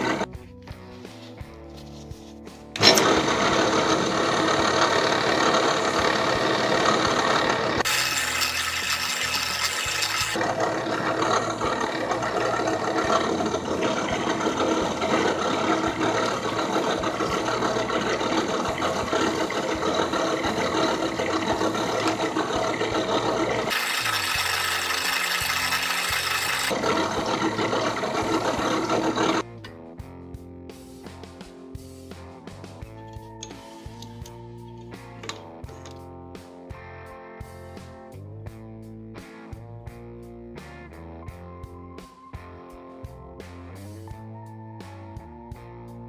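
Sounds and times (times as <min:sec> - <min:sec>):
drill press motor hum: 0:00.0 - 0:00.3, 0:02.8 - 0:29.4
sandpaper rasping on metal: 0:07.8 - 0:10.4, 0:12.9 - 0:26.8.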